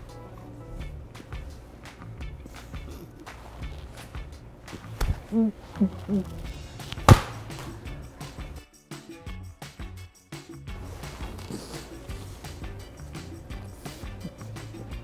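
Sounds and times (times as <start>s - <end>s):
background music with a beat: 0.0s - 5.1s, 6.4s - 15.0s
tortilla slapping a face: 1.2s - 8.4s.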